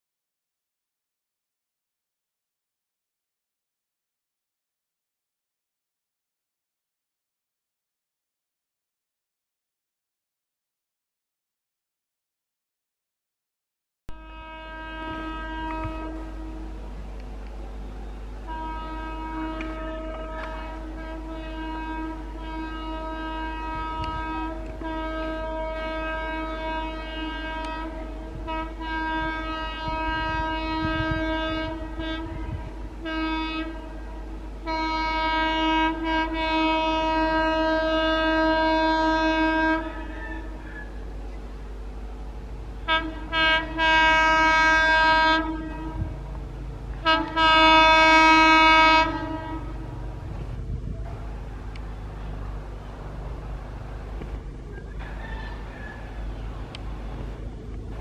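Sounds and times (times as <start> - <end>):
locomotive horn blasts: 14.1 - 17.2, 18.0 - 58.0.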